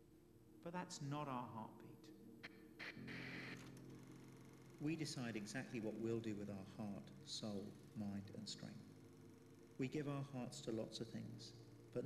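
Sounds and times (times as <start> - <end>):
faint steady low hum: 0.0 - 12.0
man narrating: 0.6 - 2.1, 4.8 - 8.8, 9.8 - 12.0.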